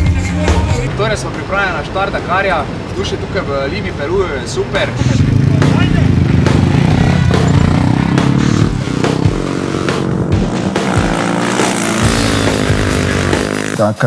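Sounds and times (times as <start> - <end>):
background music: 0.0 - 2.7, 4.8 - 14.0
motorcycle engine running: 5.0 - 14.0.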